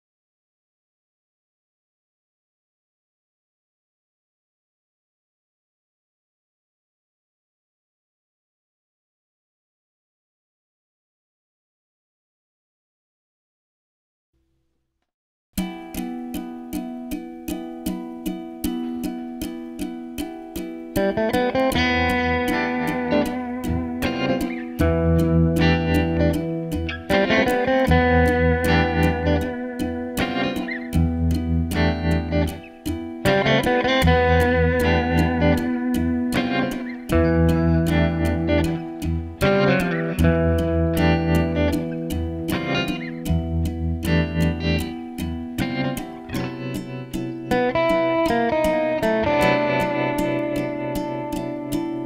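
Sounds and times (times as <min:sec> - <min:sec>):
electric guitar melody with vibrato: 0:15.6 - 0:52.0
held low backing notes: 0:15.8 - 0:52.0.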